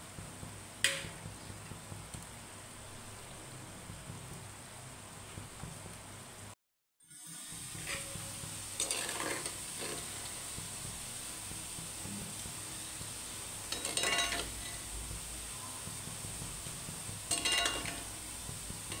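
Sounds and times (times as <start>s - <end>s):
fritters sizzling in oil: 0.0s - 19.0s
metal spoon scraping a pan: 7.6s - 10.8s, 12.7s - 15.0s, 17.2s - 19.0s.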